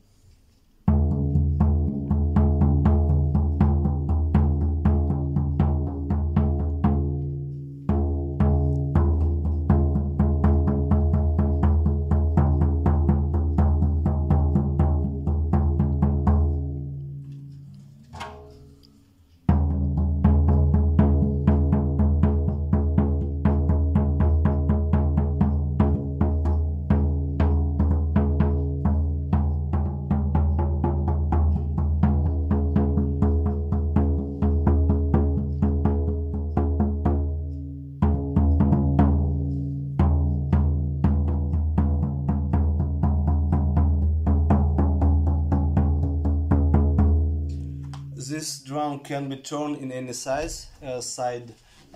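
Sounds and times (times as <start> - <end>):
frame drum beating: 0.8 - 48.6.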